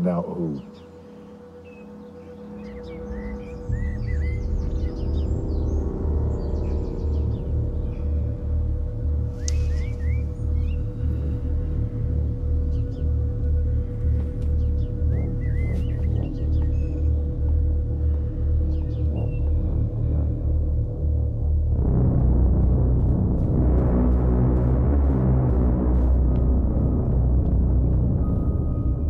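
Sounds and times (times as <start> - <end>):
sustained tone: 0.0 - 29.0
deep pulsing bass: 2.4 - 29.0.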